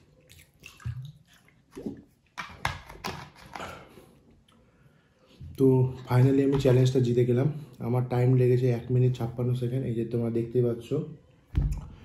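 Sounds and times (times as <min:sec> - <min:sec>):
man chewing and breathing: 0:03.4 - 0:05.5.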